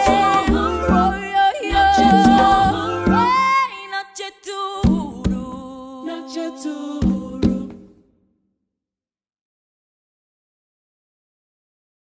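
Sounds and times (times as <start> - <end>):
vocal group singing in harmony: 0.0 - 8.0.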